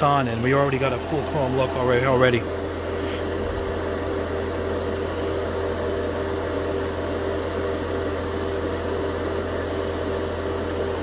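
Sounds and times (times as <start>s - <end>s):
exhaust fan humming: 0.0s - 11.0s.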